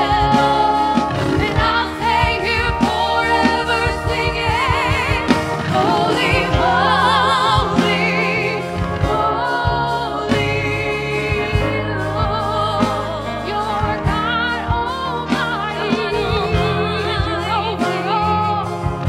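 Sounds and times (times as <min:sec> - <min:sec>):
drum kit strikes: 0:00.0 - 0:19.0
electric bass: 0:00.0 - 0:19.0
keyboard: 0:00.0 - 0:19.0
singers with vibrato: 0:00.0 - 0:19.0.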